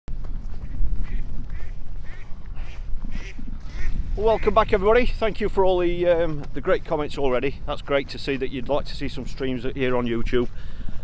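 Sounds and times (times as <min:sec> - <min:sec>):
wind buffeting microphone: 0:00.1 - 0:11.0
faint waterfowl calling: 0:01.0 - 0:04.6.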